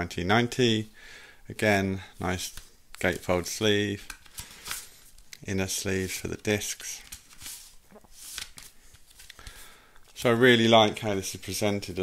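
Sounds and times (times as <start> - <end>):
cardboard sleeves rustling: 2.2 - 12.0.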